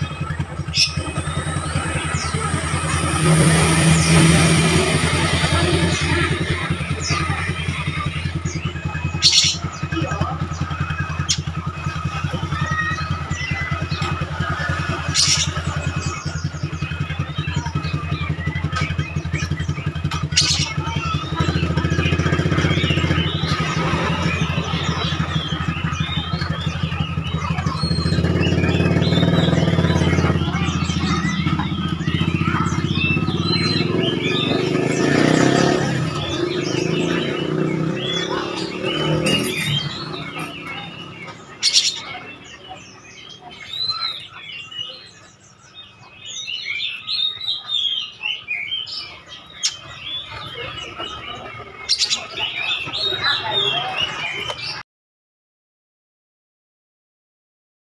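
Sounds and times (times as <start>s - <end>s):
motorcycle engine running: 0.0s - 48.1s, 48.8s - 54.8s
bird chirping and singing: 0.0s - 54.8s.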